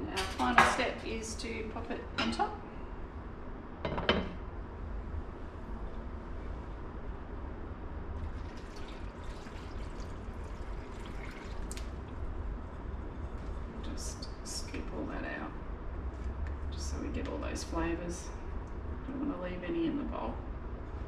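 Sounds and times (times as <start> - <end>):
sauce splashing and trickling: 8.2 - 12.3.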